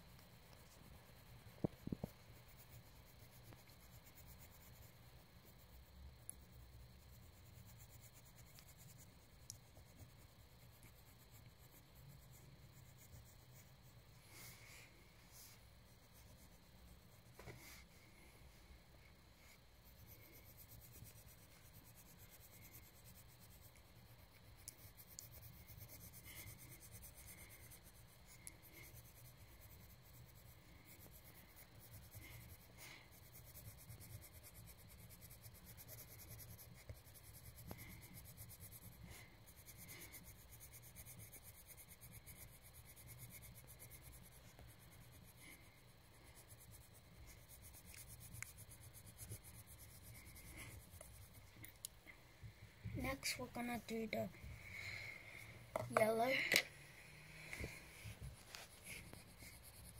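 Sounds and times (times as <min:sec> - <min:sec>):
coloring tool scratching on paper: 0:00.0 - 0:14.6, 0:15.4 - 0:17.9, 0:19.4 - 0:51.6, 0:57.6 - 0:59.9.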